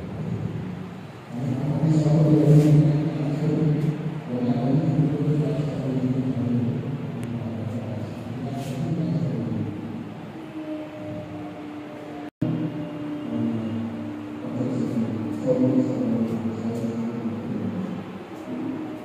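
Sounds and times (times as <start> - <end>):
muffled music with long held notes: 0.0 - 19.0.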